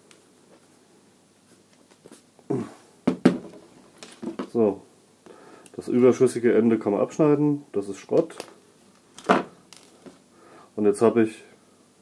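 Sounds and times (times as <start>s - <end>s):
drill thumping on tabletop: 3.0s - 3.6s.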